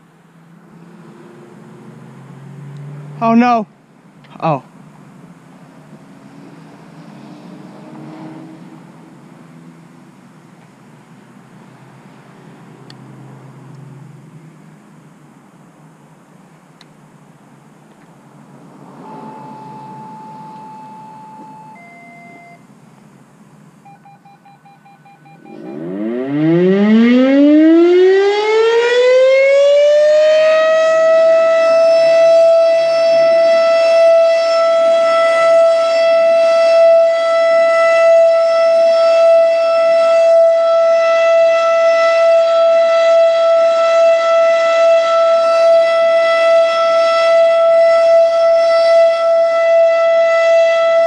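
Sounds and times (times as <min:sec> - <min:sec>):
siren winding up to steady tone: 0:18.8 - 0:22.7, 0:23.8 - 0:51.0
two-tone radio beeps: 0:19.0 - 0:22.6, 0:23.8 - 0:25.9.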